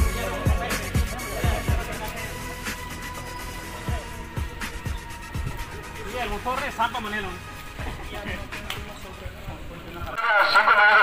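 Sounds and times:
loud thin man's voice: 0:10.2 - 0:11.0.

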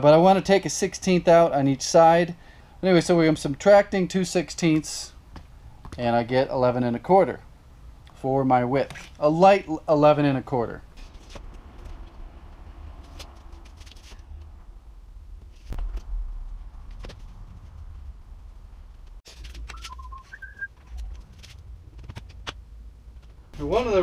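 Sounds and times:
low hum: 0:10.9 - 0:23.8
whistle-like chirps: 0:19.7 - 0:20.7.

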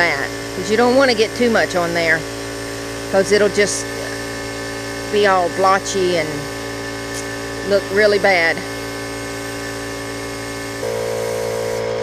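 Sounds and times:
air compressor running: 0:00.0 - 0:12.0
higher tone over hum: 0:03.3 - 0:12.0.

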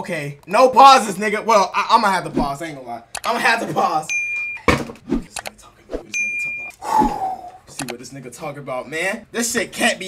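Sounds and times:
electronic alert chime: 0:06.2 - 0:06.7.

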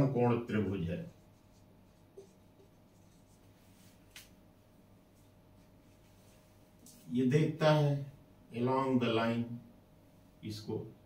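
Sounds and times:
marker pen writing on whiteboard: 0:01.0 - 0:03.6.

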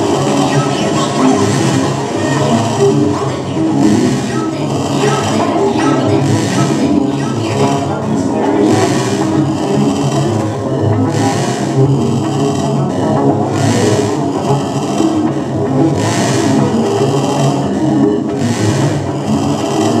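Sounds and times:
gritty synthesizer noise drone: 0:00.0 - 0:20.0.

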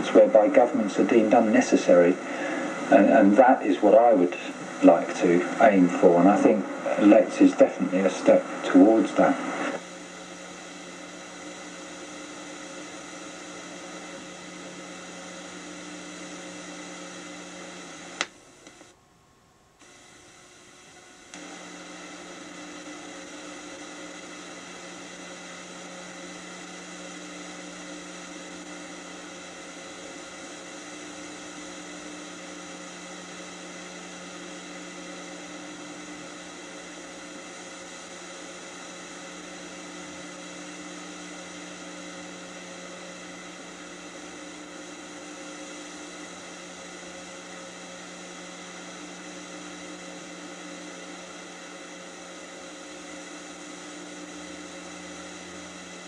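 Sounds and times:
faint electrical hum and buzz: 0:00.0 - 0:56.0
tape hiss: 0:00.0 - 0:56.0.

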